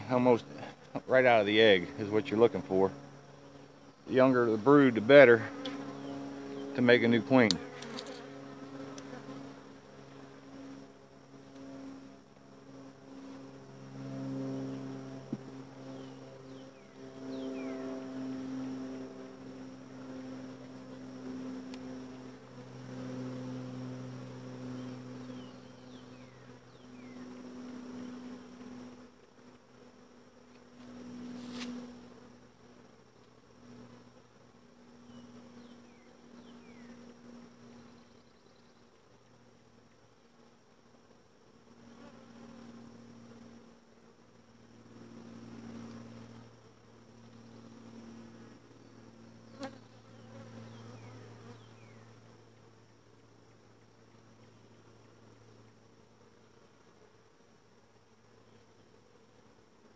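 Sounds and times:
honeybees buzzing: 0.0s - 59.9s.

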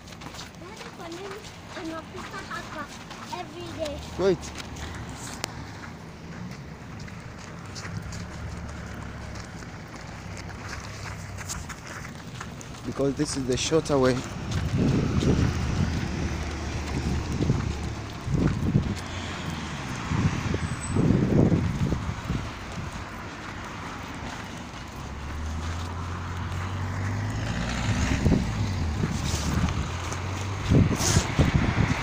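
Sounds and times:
car engine passing: 1.3s - 32.0s
wind thumps on microphone: 14.4s - 19.2s, 20.0s - 22.9s, 27.8s - 32.0s.

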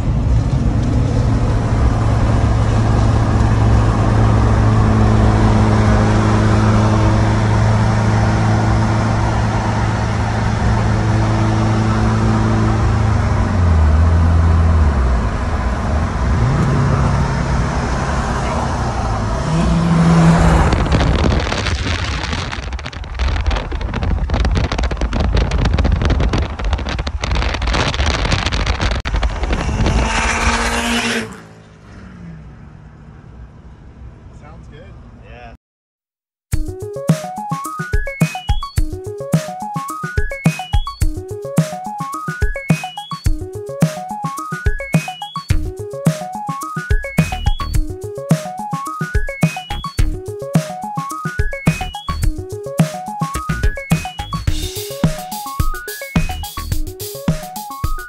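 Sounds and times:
diesel pickup engine and road drone: 0.0s - 35.6s, 43.2s - 57.4s
wind buffeting microphone: 20.2s - 31.0s.

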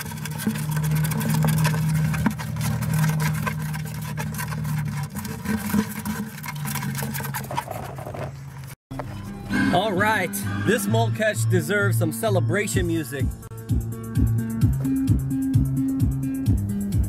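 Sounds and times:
claws scratching plastic bucket: 0.0s - 8.8s.

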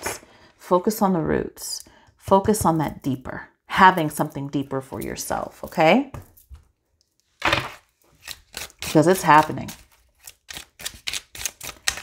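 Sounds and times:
cards rustling: 7.4s - 12.0s.

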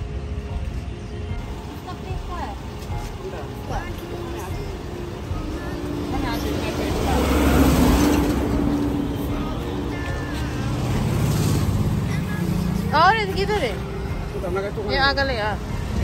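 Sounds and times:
road traffic passing: 0.0s - 16.0s.

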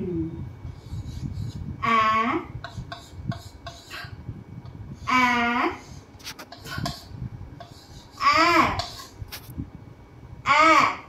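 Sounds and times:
chalk tapping and scraping: 0.7s - 1.7s, 2.6s - 4.8s, 5.8s - 9.5s.

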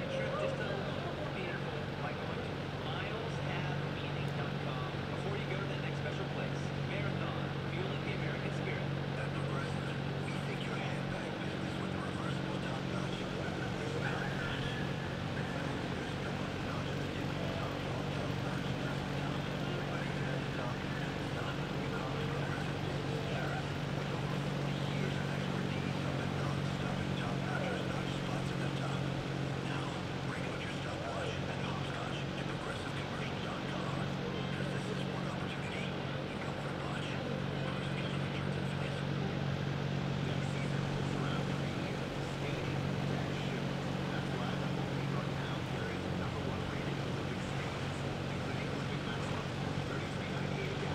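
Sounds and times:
indistinct voices: 0.0s - 39.5s
constant low hum: 0.0s - 50.9s.

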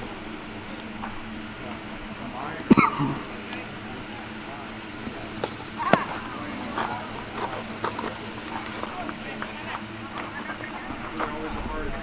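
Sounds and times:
indistinct voices calling: 0.0s - 12.0s.

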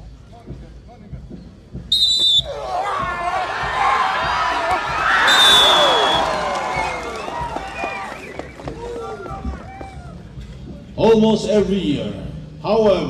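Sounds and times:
referee's whistle blast: 1.9s - 2.6s, 5.2s - 7.0s
crowd shouting and cheering: 2.4s - 10.4s.

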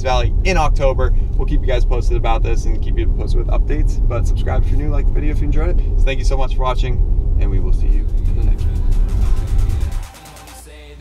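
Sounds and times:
road rumble inside car: 0.0s - 10.0s.

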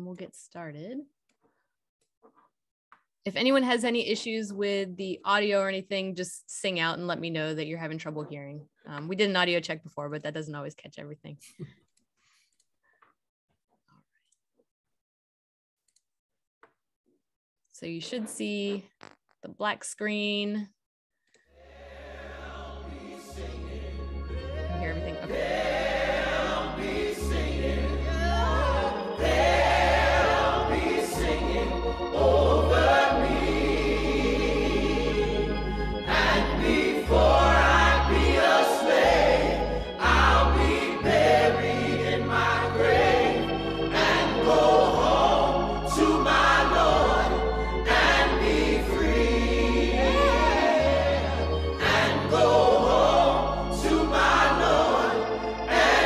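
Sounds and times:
choir singing: 21.6s - 56.0s
deep held bass notes: 21.6s - 56.0s.

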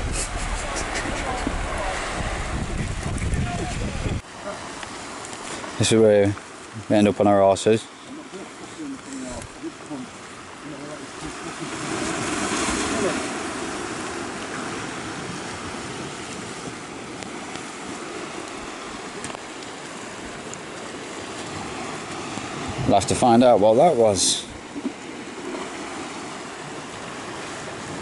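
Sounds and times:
surf washing onto rocky shore: 0.0s - 28.0s.

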